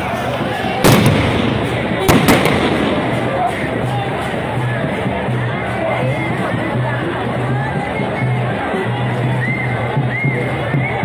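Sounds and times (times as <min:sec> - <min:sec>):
protest crowd voices: 0:00.0 - 0:11.0
sharp bangs: 0:00.8 - 0:04.0.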